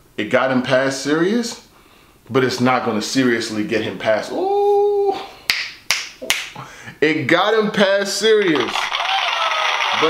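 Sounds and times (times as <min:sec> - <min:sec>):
finger snaps: 0:05.5 - 0:06.6.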